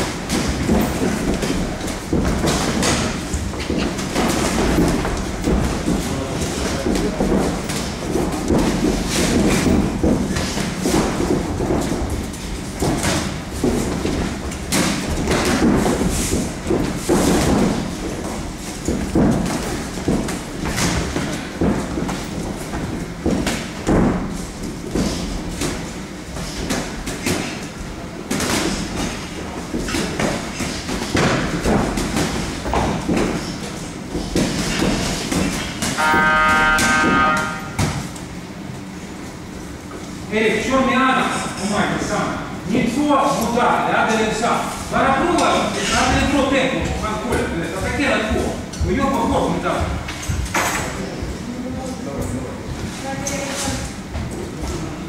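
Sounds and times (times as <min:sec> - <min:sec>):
shuffling footwork on canvas: 0:00.0 - 0:38.2
round timer buzzer: 0:36.0 - 0:37.8.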